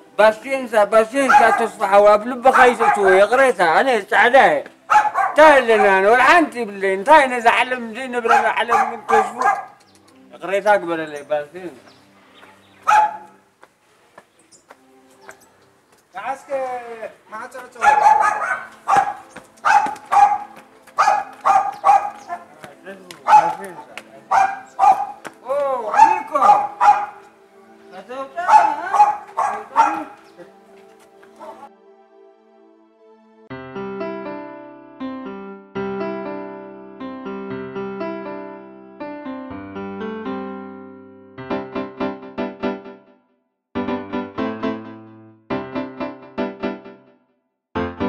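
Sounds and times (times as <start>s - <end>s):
dog barking: 1.2s - 1.8s, 2.5s - 3.3s, 4.9s - 6.1s, 8.2s - 9.8s, 12.8s - 13.4s, 17.8s - 22.5s, 23.2s - 23.6s, 24.3s - 25.3s, 25.9s - 27.3s, 28.4s - 30.3s.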